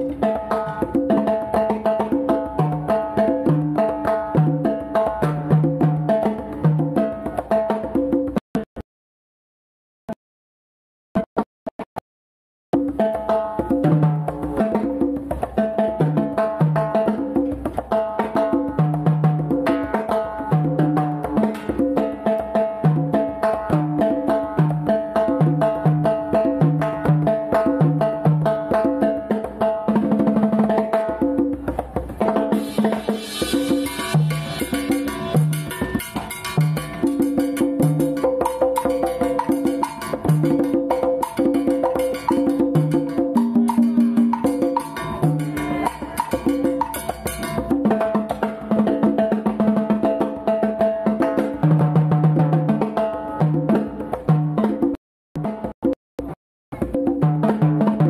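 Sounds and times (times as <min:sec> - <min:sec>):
latin instrumental music: 0:00.0 - 0:08.8, 0:12.7 - 0:58.0.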